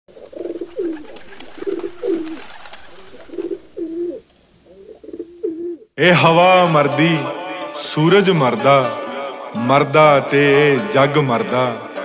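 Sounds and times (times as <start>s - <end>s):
pigeons cooing: 0.1s - 5.9s.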